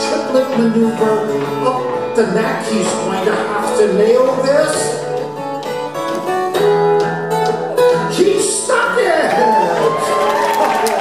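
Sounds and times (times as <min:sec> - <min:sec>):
acoustic guitar picking: 0:00.0 - 0:09.0.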